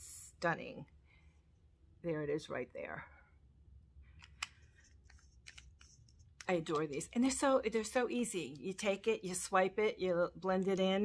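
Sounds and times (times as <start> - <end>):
soft scrapes and light ticks: 4.2 - 7.0.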